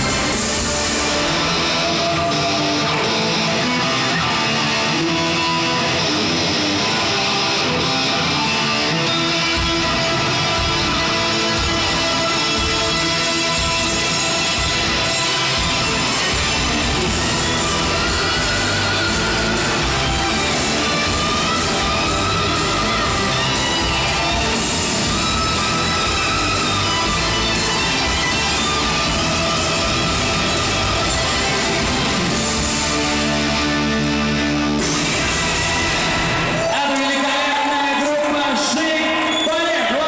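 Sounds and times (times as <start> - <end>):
loud live rock music: 0.0 - 40.0.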